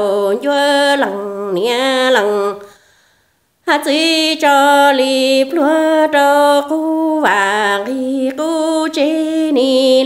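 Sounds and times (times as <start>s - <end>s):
woman singing unaccompanied: 0.0s - 2.8s, 3.6s - 10.0s.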